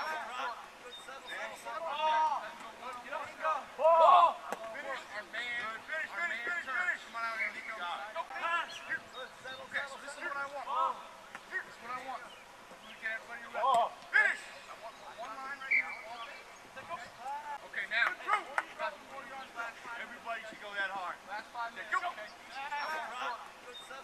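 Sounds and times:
distant men shouting: 16.8s - 21.0s.

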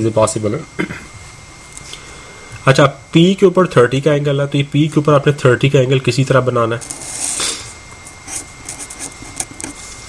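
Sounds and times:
marker scratching on paper: 8.2s - 9.8s.

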